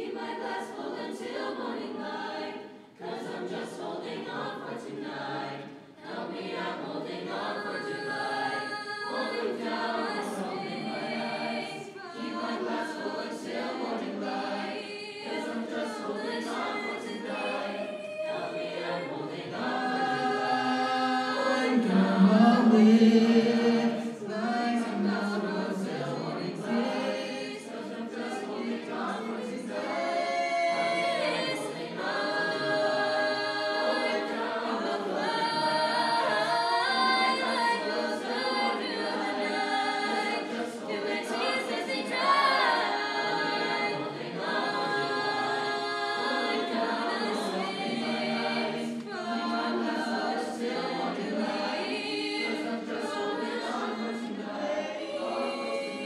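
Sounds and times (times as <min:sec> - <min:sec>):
mixed-voice choir singing: 0:00.0 - 0:56.0.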